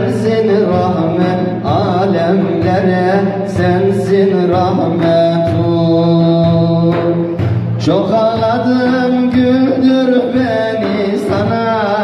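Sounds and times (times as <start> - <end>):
frame drum beats: 0.0 - 12.0
man singing melismatic line: 0.0 - 12.0.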